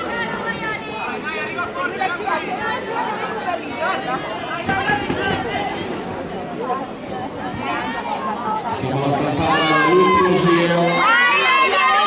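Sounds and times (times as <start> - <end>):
babble of overlapping voices: 0.0 - 12.0.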